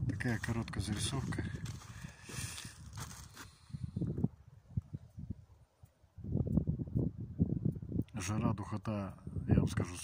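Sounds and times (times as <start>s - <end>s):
footsteps on dirt: 0.1s - 3.6s.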